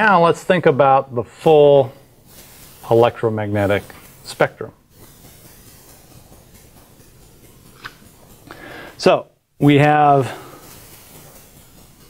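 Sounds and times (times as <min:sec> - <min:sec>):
marker writing on glass: 0:03.6 - 0:08.5.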